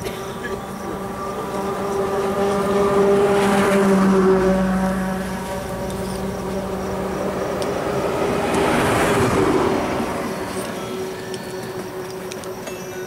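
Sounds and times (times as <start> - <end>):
vehicle engine humming: 0.0 - 13.0.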